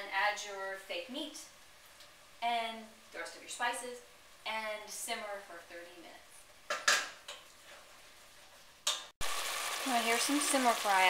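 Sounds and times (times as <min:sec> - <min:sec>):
vegetables sizzling in a pan: 0:00.0 - 0:11.0.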